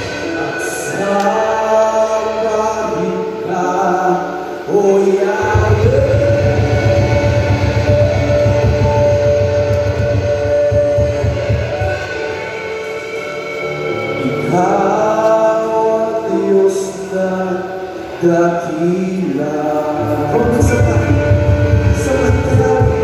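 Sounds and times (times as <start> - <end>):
heavy low backing: 0.0 - 23.0
long held sung note: 0.0 - 23.0
music with singing: 0.0 - 23.0.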